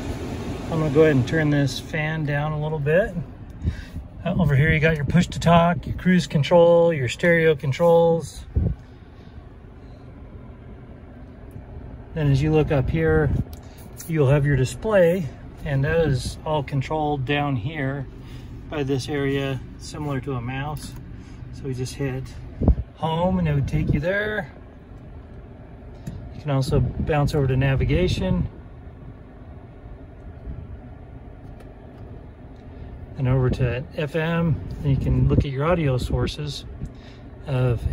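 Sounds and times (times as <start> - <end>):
car engine idling: 0.0 - 37.9
ventilation fan running: 0.0 - 37.9.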